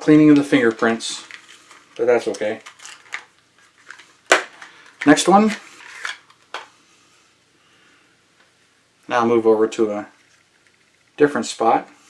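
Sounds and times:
rustle of handled supplies: 0.0s - 7.2s.

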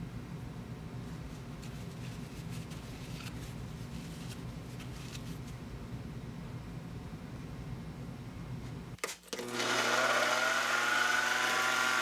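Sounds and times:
steady low hum: 0.0s - 9.0s.

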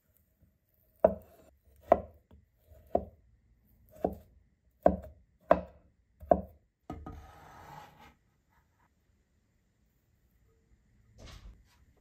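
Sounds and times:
cleaver chopping on wooden board: 1.0s - 3.1s, 3.9s - 4.2s, 4.8s - 6.6s.

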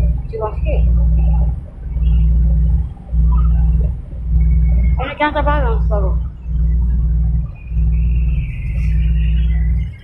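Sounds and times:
faint passenger voices: 0.0s - 10.0s
ferry engines droning: 0.0s - 10.0s.

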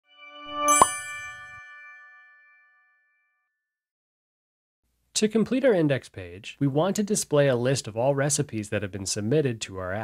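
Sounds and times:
logo chime ringing tones: 0.6s - 2.2s.

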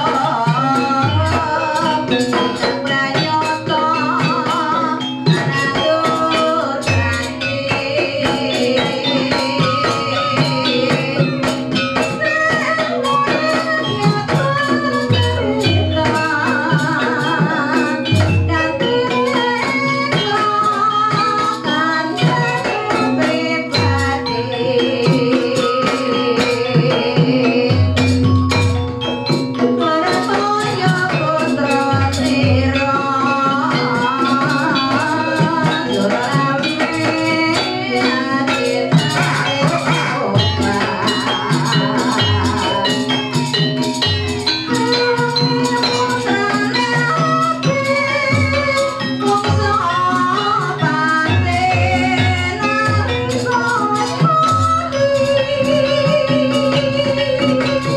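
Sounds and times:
constant jingling rattle: 0.0s - 57.9s
drum strokes: 0.0s - 57.9s
metallophones ringing: 0.0s - 57.9s
person singing with vibrato: 0.0s - 57.9s.

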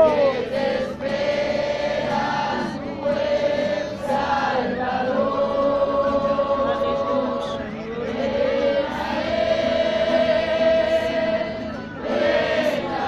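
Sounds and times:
acoustic guitar: 0.0s - 13.0s
congregation singing: 0.0s - 13.0s.

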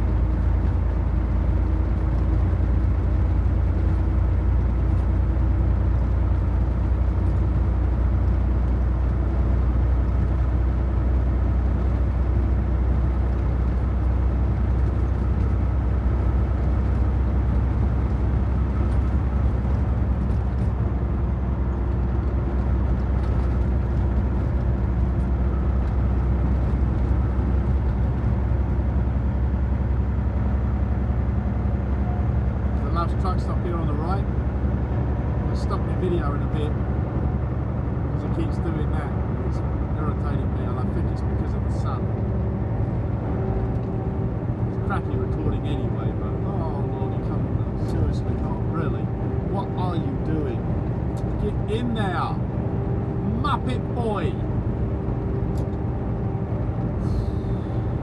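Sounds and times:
road noise: 0.0s - 58.0s
truck engine drone: 0.0s - 58.0s.

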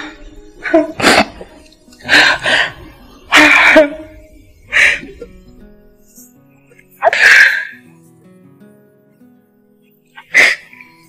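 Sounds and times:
soft background music: 0.0s - 11.0s
woman crying: 3.3s - 5.3s.

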